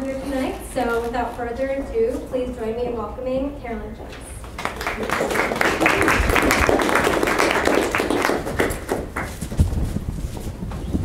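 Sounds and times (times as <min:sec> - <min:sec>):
audience applauding: 0:04.4 - 0:09.5.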